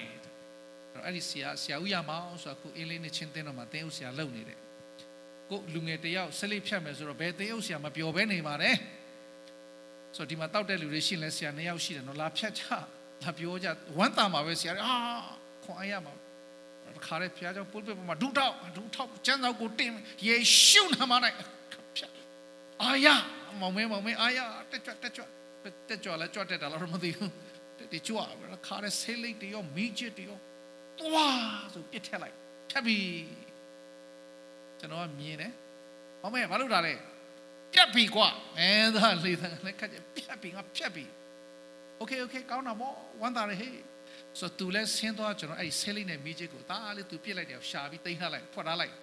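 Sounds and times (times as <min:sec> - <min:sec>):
electrical mains hum: 0:00.0 - 0:49.0
man preaching into microphone: 0:10.2 - 0:16.1, 0:16.9 - 0:22.1, 0:22.8 - 0:25.3, 0:31.0 - 0:33.4, 0:37.8 - 0:41.1
man speaking over loudspeaker: 0:17.0 - 0:21.5, 0:22.8 - 0:25.2.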